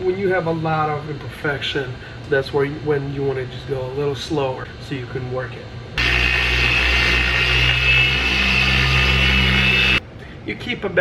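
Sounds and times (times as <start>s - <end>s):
polisher motor hum and whine: 6.0s - 10.0s.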